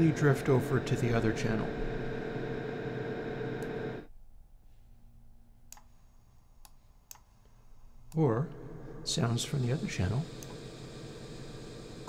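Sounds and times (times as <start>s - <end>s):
dense reverb wash of held tones: 0.0s - 4.1s, 8.2s - 12.0s
faint low hum: 0.0s - 12.0s.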